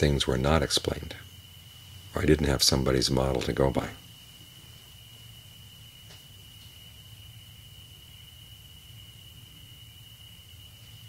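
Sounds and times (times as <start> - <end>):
faint high-pitched whine: 0.0 - 11.0
low steady hum: 0.0 - 11.0.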